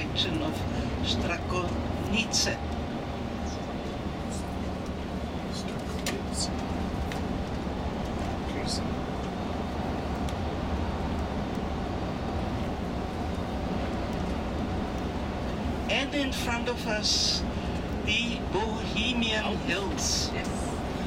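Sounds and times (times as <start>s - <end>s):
engine and tyres rumbling: 0.0s - 21.0s.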